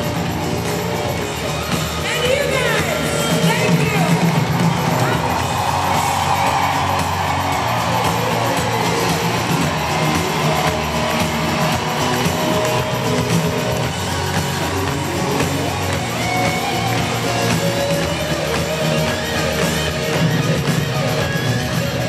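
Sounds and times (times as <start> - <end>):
live pop-rock band: 0.0 - 22.0.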